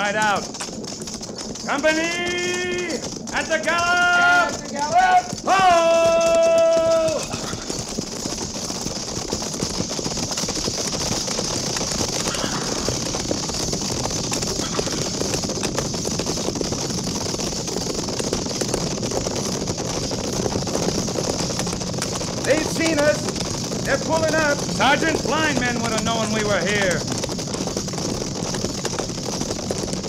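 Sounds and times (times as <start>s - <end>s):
horses' hooves galloping: 0.0s - 30.0s
rattling tack: 0.0s - 30.0s.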